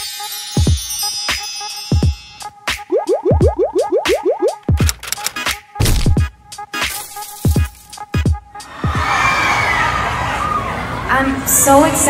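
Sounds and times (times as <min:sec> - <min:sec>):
crowd cheering and screaming: 0:08.6 - 0:11.5.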